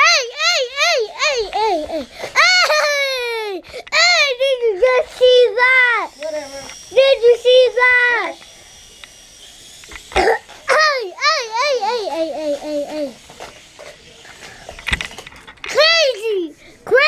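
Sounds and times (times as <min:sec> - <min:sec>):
child vocalizing high-pitched: 0:10.2 - 0:13.2.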